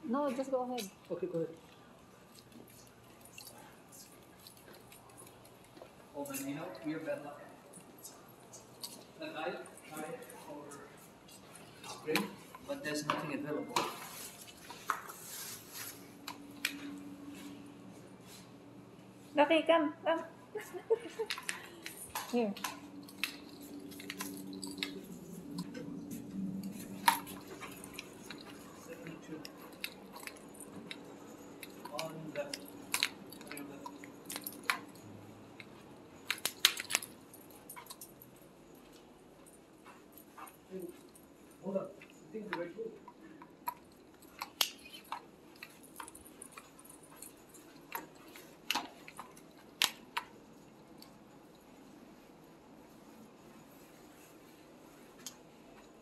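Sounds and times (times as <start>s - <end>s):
dog claws clicking and rustles: 0.4s - 17.5s, 21.1s - 56.0s
rolling suitcase on tiles: 21.3s - 41.7s.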